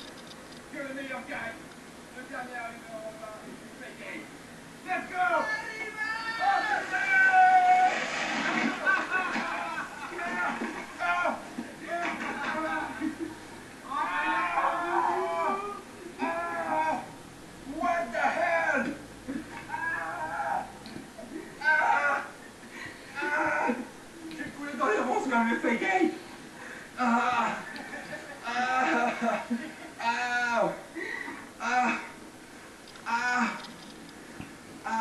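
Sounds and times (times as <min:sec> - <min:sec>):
people shouting and yelling: 0:04.8 - 0:13.1, 0:13.8 - 0:20.8, 0:21.6 - 0:22.4, 0:23.2 - 0:23.9
long held yell: 0:04.9 - 0:08.1, 0:13.8 - 0:18.9, 0:19.6 - 0:20.8, 0:21.6 - 0:22.4
man crying out: 0:05.1 - 0:07.9, 0:13.8 - 0:17.2, 0:21.6 - 0:22.4, 0:23.2 - 0:23.9, 0:27.0 - 0:27.7, 0:28.4 - 0:30.9, 0:31.6 - 0:32.2, 0:33.0 - 0:33.7.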